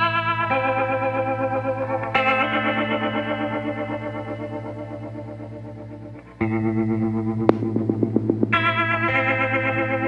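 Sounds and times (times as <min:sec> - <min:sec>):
electric guitar chords with chorus: 0:00.0 - 0:10.0.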